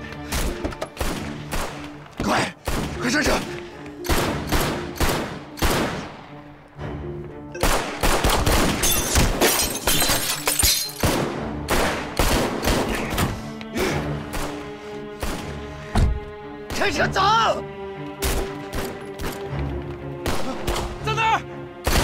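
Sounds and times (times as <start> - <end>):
dramatic film music: 0.0 - 22.0
pistol shots: 7.6 - 9.5.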